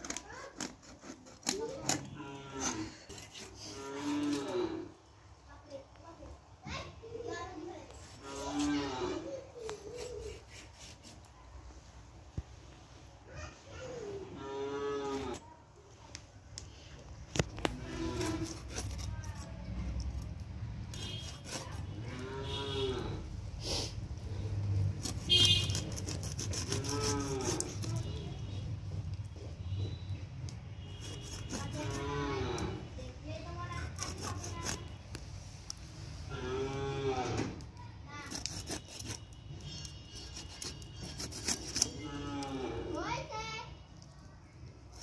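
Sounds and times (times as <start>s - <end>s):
blade scraping clicks: 17.3s - 20.3s, 24.9s - 28.1s, 33.8s - 35.2s, 38.2s - 42.5s
drawn-out animal call: 26.3s - 28.0s.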